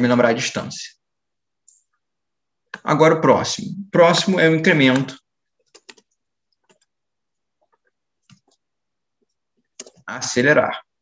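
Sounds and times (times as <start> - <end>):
mouse and keyboard clicks: 5.7 - 6.9, 9.8 - 10.1.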